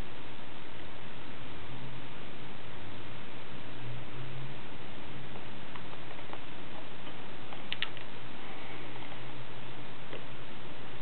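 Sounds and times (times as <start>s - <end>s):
low hum: 0.0s - 11.0s
steady hiss: 0.0s - 11.0s.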